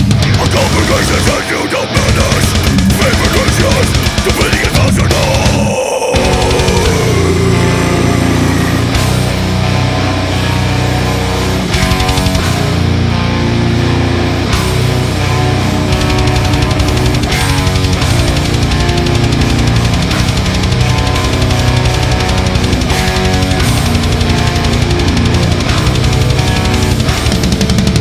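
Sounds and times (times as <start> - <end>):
fast dense drumming: 0.0 - 9.5, 11.8 - 12.8, 15.7 - 28.0
distorted electric guitars: 0.0 - 28.0.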